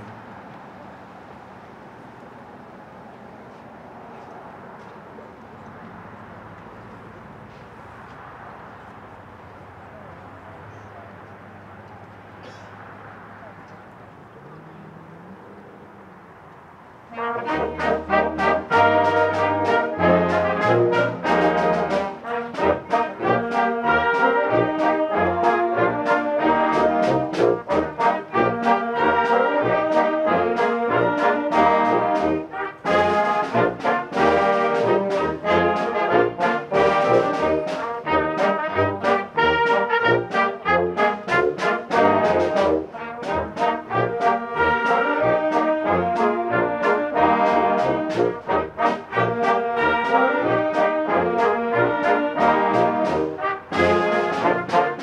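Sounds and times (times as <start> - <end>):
brass short detached notes: 17.1 - 55.0
concert band playing: 17.1 - 55.0.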